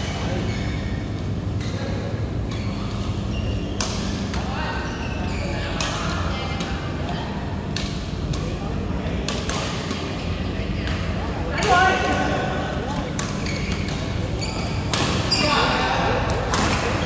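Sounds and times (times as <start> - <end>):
steady low hum: 0.0 - 17.0
rackets striking shuttlecock: 7.7 - 8.6.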